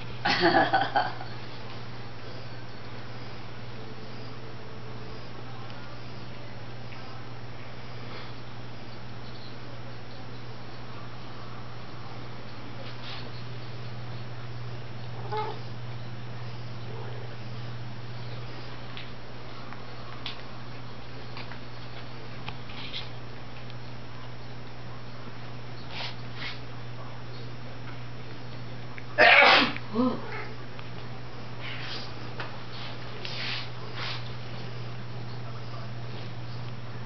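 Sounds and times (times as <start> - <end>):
steady low hum: 0.0 - 37.0
cat meowing: 15.2 - 15.6
loud sneeze: 29.2 - 29.8.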